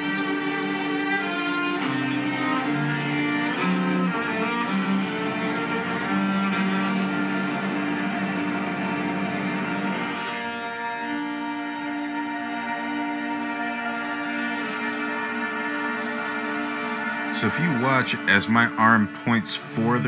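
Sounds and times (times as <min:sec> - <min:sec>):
amplified viola with reverb: 0:00.0 - 0:20.0.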